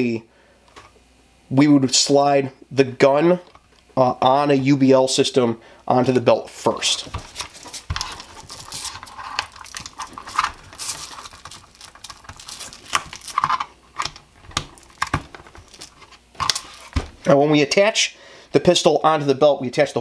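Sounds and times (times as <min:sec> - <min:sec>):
webbing belt rustling: 0:07.0 - 0:17.2.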